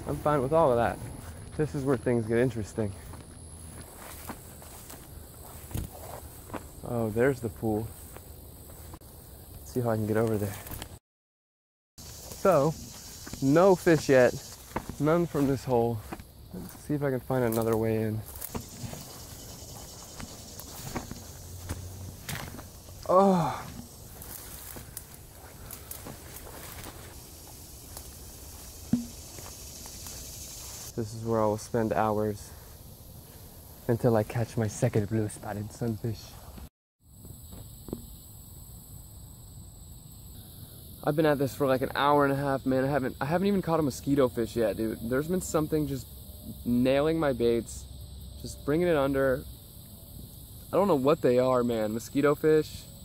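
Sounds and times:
footsteps through tall grass: 0.0 - 9.0, 10.2 - 11.0, 12.0 - 31.0
sharp thump: 28.9 - 29.5.

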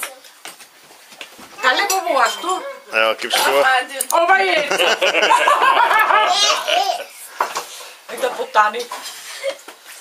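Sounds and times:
older man laughing loudly: 4.6 - 7.0
hearty laughter: 4.6 - 7.1.

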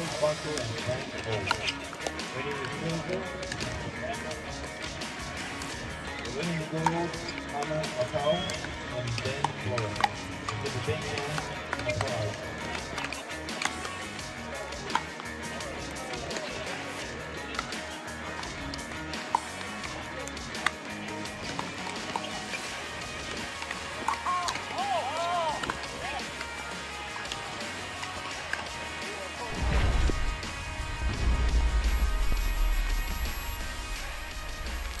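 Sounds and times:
background music: 0.0 - 35.0
music with heavy bass: 12.5 - 35.0.

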